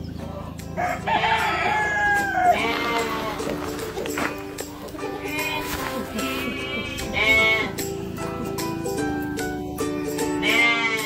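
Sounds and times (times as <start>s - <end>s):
background music with held notes: 0.0s - 11.0s
young animal bleating: 1.1s - 7.9s, 10.4s - 11.0s.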